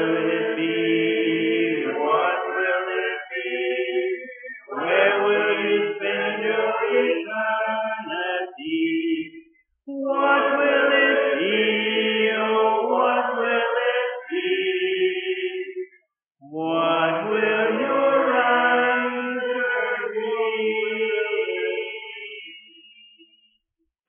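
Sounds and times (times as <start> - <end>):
congregation singing a hymn: 0.0 - 15.9, 16.5 - 22.7.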